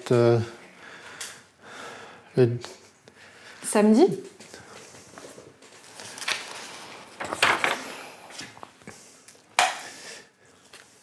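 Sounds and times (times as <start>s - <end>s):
man speaking: 0.0s - 0.6s, 2.3s - 2.8s.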